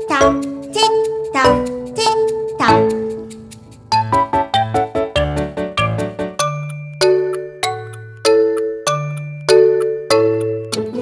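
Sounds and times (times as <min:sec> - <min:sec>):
low bass note: 0:02.6 - 0:06.2.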